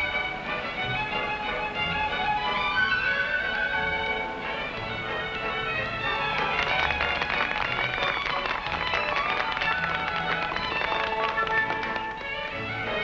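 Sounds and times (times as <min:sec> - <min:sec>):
orchestral music with strings: 0:00.0 - 0:13.0
crowd applauding: 0:06.0 - 0:12.4.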